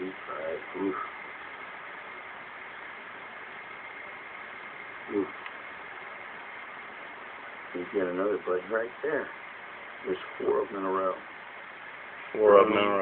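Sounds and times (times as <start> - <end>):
background hiss: 0.0 - 13.0
man saying ooh: 5.1 - 5.3.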